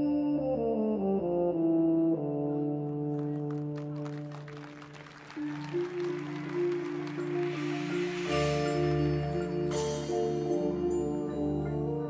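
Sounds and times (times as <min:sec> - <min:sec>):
sustained brass chords: 0:00.0 - 0:12.0
keyboard mallet percussion notes: 0:05.4 - 0:12.0.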